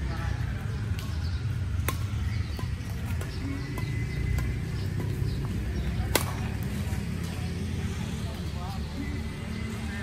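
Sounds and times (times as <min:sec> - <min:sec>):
racket striking shuttlecock: 0:00.9 - 0:07.4.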